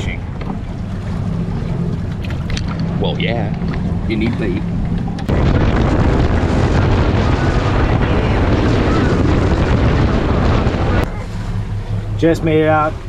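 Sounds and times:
boat engine: 0.0 - 13.0
hull on water: 0.0 - 13.0
wind on microphone: 2.1 - 11.2.

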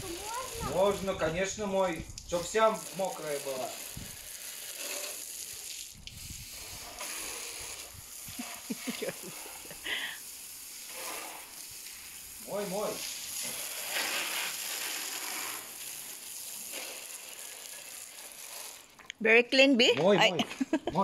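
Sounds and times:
hose water spraying on paving: 0.0 - 19.1.

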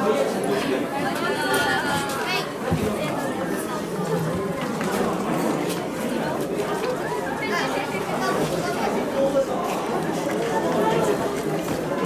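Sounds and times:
crowd of voices chattering: 0.0 - 12.0.

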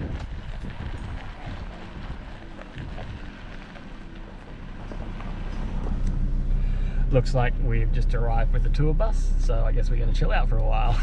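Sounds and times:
tyres rolling on dirt: 0.0 - 8.9
car engine from inside cabin: 0.0 - 11.0
low rumble: 0.0 - 11.0.

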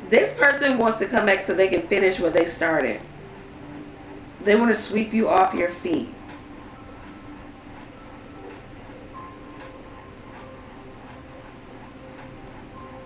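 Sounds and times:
soft background music: 0.0 - 13.0
light irregular ticks: 0.3 - 6.4, 7.0 - 13.0.

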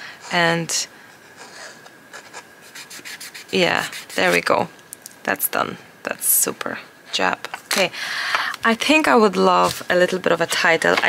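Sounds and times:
pen scratching on paper: 1.4 - 4.4.

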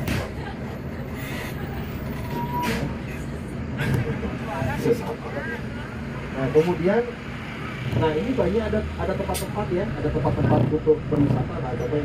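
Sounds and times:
bus engine and road noise: 0.0 - 12.0.

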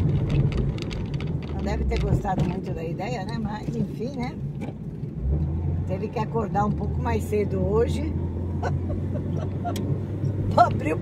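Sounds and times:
car engine drone inside cabin: 0.0 - 11.0
road noise: 0.0 - 11.0.

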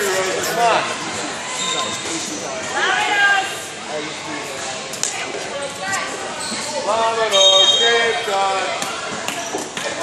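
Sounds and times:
voices echoing in gymnasium: 0.0 - 10.0.

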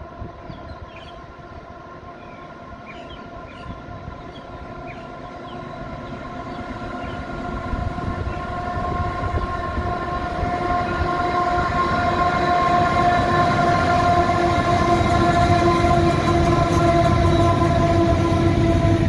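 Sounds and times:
freight train rumbling past: 0.0 - 19.0.

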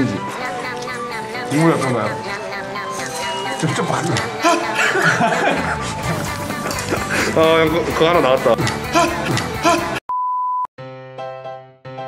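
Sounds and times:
bright music with ringing notes: 0.0 - 9.5.

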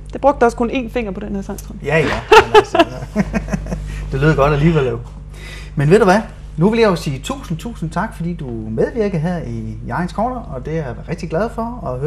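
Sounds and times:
woman laughing: 2.0 - 4.8.

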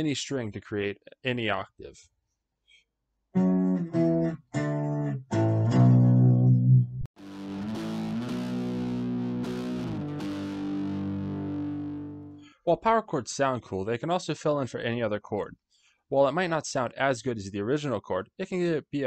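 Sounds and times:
electric guitar power chords: 3.4 - 12.4.

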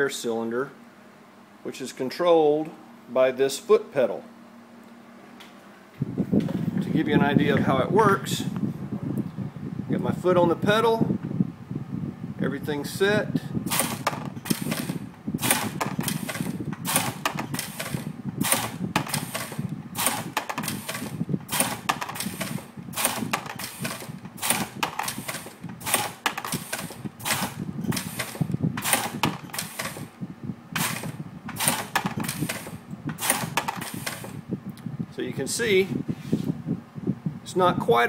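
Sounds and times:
air press strokes: 13.6 - 30.2, 30.8 - 34.4.

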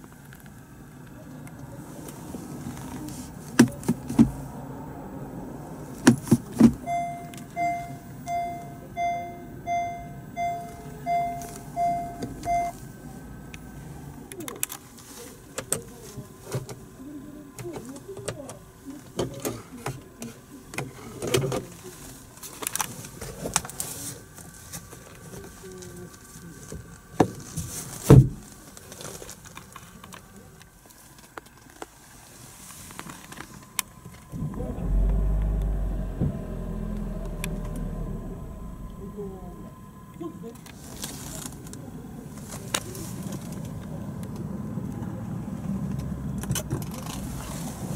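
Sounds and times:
clicks and knocks inside car: 6.0 - 7.9, 27.2 - 28.5
reverse warning chime beeps: 6.8 - 12.8
low rumble: 34.3 - 40.2.

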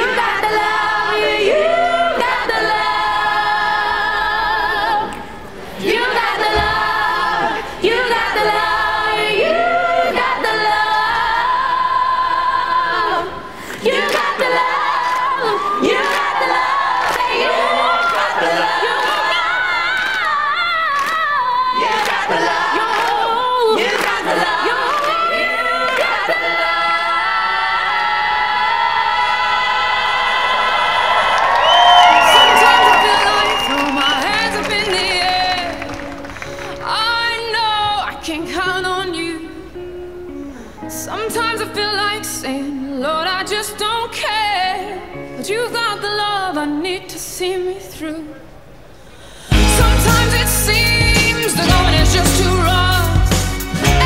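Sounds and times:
mixed voices singing in harmony: 0.0 - 39.9, 49.5 - 54.0
crowd whooping and cheering: 14.1 - 22.4, 29.0 - 36.9.

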